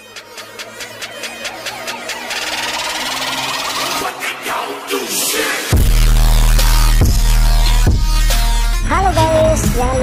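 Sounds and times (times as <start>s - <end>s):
electronic pulses: 0.0s - 10.0s.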